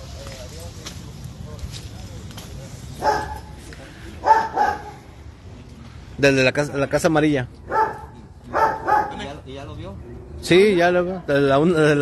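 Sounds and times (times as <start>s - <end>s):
dog barking: 3.0s - 3.6s, 4.2s - 5.0s, 7.7s - 9.3s.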